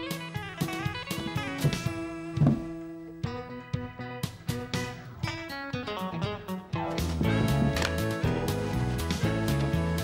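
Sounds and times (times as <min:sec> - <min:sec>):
country tune on guitar: 0:00.0 - 0:10.0.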